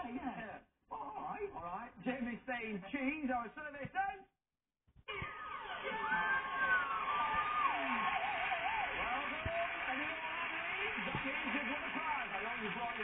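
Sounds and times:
audience cheering and applauding: 0:05.4 - 0:13.0.

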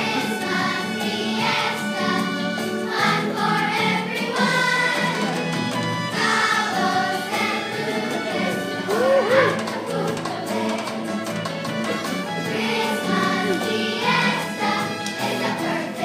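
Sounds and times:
children's choir singing: 0:00.0 - 0:16.0
instrumental accompaniment: 0:00.0 - 0:16.0.

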